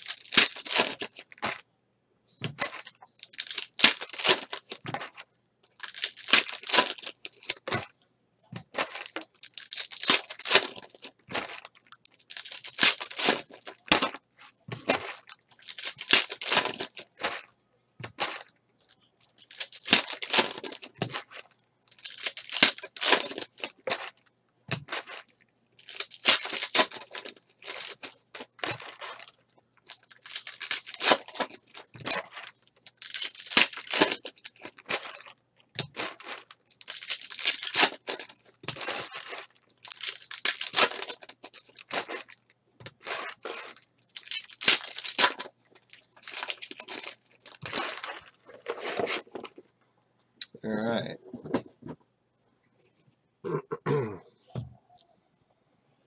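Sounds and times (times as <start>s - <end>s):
foil wrappers tearing and crinkling: 0.0s - 1.6s, 2.4s - 7.9s, 8.6s - 18.5s, 19.2s - 49.6s.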